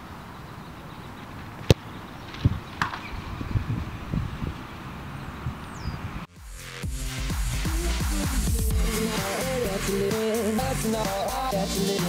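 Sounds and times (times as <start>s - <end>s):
outdoor background noise: 0.0s - 12.0s
electronic music: 6.3s - 12.0s.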